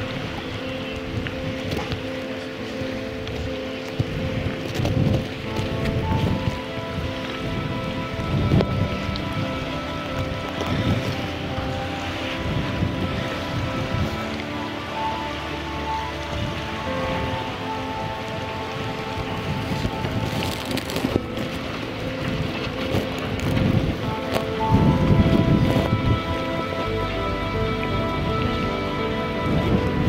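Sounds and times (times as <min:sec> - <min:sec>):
wind buffeting microphone: 0:00.0 - 0:30.0
brass military band playing: 0:05.4 - 0:30.0.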